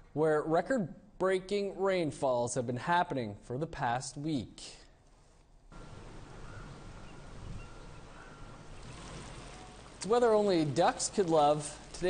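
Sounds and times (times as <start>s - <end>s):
wind: 0.0s - 12.0s
water hiss: 5.8s - 12.0s.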